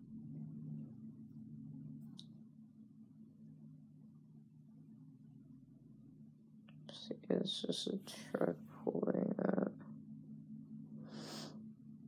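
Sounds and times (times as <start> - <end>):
low steady hum: 0.0 - 12.0
person speaking softly: 6.8 - 9.8.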